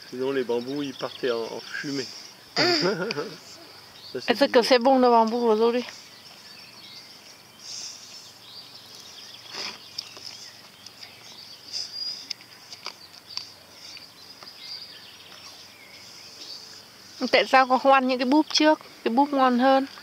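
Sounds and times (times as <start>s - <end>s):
bird chirps: 0.0s - 20.0s.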